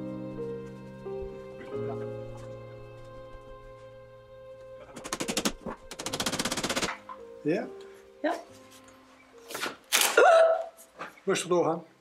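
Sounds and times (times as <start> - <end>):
soft background music: 0.0 - 12.0.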